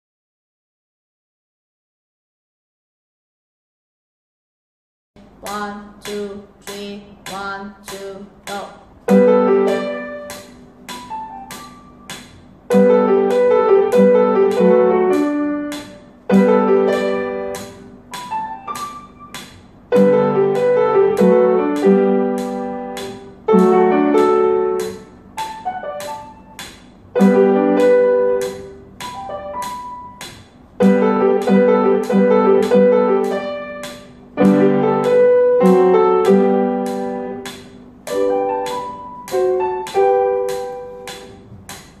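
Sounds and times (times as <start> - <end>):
upright piano playing: 9.0 - 42.0.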